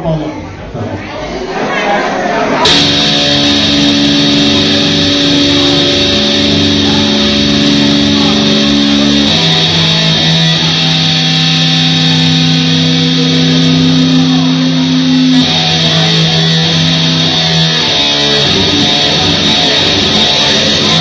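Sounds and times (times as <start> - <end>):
distorted electric guitar chords: 2.6 - 21.0.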